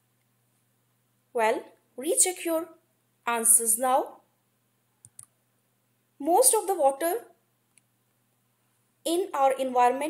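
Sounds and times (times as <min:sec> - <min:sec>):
computer mouse clicks: 0:05.0 - 0:05.4.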